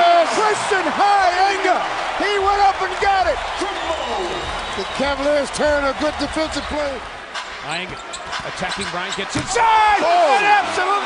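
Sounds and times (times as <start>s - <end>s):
excited commentator voice: 0.0s - 7.0s, 8.5s - 11.0s
arena crowd noise: 0.0s - 11.0s.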